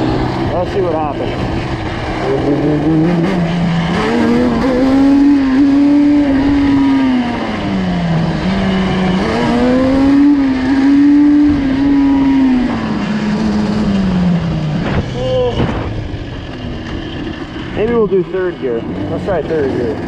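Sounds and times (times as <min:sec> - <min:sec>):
two-stroke engine revving: 0:00.0 - 0:20.0.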